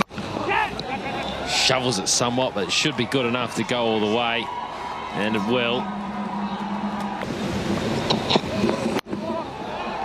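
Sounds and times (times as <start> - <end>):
stadium crowd din: 0.0 - 10.0
low hum: 4.8 - 9.0.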